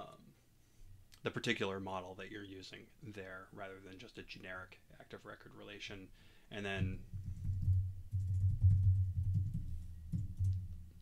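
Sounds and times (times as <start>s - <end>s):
typing on keyboard: 7.5s - 9.7s.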